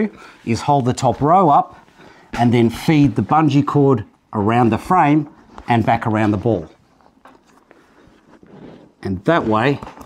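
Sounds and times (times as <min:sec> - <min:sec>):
soft rustling: 0:00.0 - 0:10.0.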